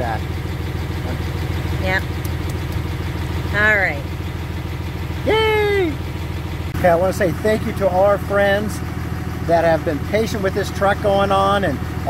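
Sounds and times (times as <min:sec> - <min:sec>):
diesel engine idling: 0:00.0 - 0:12.0
person talking: 0:05.3 - 0:06.0.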